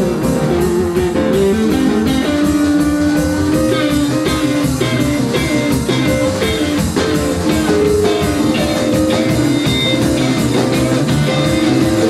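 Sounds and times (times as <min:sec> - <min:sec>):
drum kit beat: 0:00.0 - 0:12.0
electric bass: 0:00.0 - 0:12.0
electric guitar: 0:00.0 - 0:12.0.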